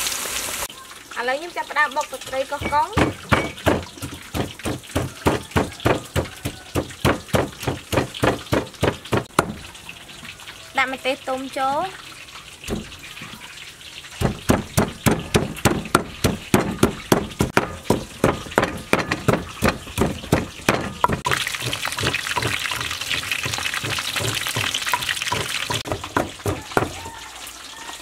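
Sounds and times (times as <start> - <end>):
pestle pounding in wooden mortar: 2.2 - 9.7, 12.7 - 13.0, 14.2 - 27.2.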